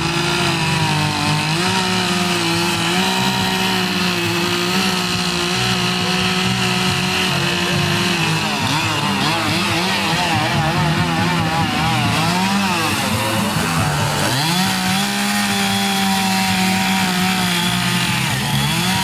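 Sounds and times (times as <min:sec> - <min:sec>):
chainsaw running at high revs: 0:00.0 - 0:19.0.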